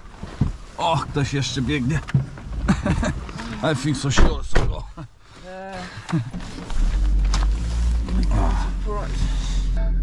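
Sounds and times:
car engine rumble: 0.0 - 10.0
voices: 8.0 - 10.0.

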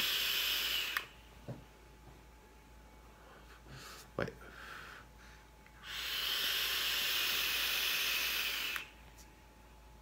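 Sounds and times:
air hissing through atomizer: 0.0 - 1.2, 5.8 - 9.0.

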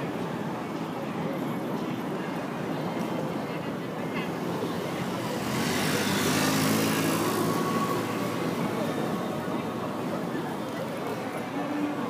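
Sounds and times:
background voices: 4.2 - 12.0
vehicle passing by: 5.0 - 10.0.

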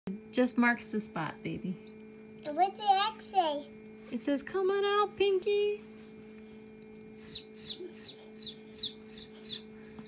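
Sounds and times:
incubator humming: 0.1 - 10.0
chick peeping: 7.2 - 9.7.

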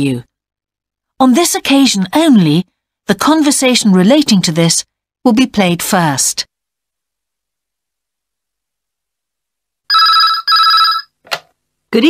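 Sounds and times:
telephone double ring: 9.9 - 11.2.

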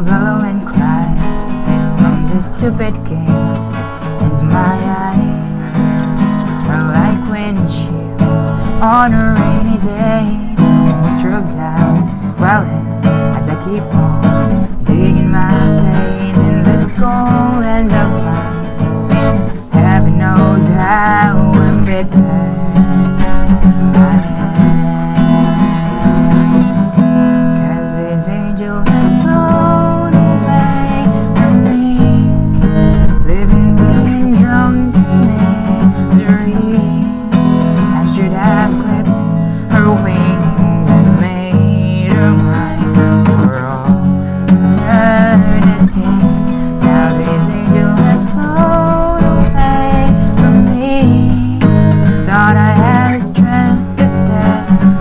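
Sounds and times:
acoustic guitar: 0.0 - 55.0
man singing: 0.0 - 55.0.

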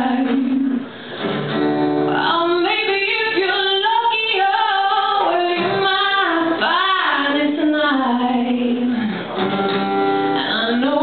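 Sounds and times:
woman singing: 0.0 - 0.9, 2.1 - 9.2, 10.3 - 11.0
acoustic guitar: 0.0 - 11.0.

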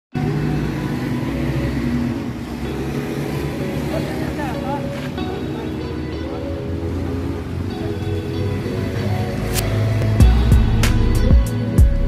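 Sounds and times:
motorbike engines passing: 0.2 - 11.8
car engines passing: 0.2 - 12.0.

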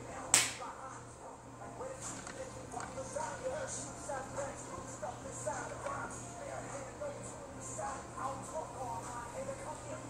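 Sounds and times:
sharp smack: 0.4 - 0.6.

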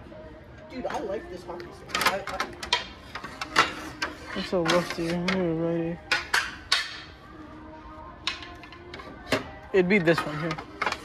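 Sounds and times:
hockey sticks clacking together: 6.1 - 7.1.

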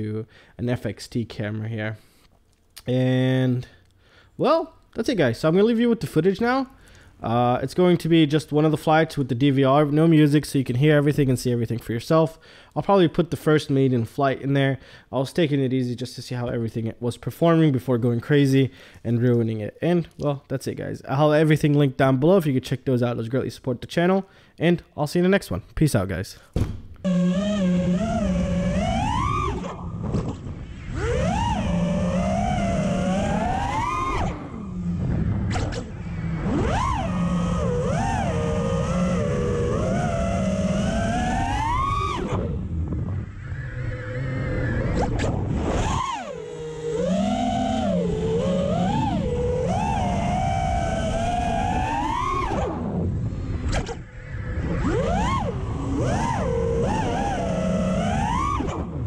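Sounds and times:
drone motors whining: 27.0 - 59.0.

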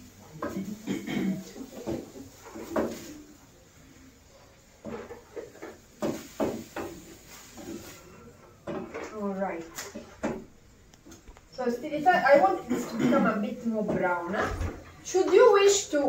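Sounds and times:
wooden spoon scraping meat in pan: 4.7 - 8.2.

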